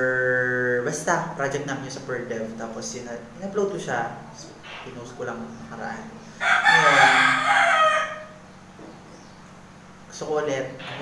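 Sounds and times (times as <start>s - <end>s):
rooster crowing: 6.3s - 8.5s.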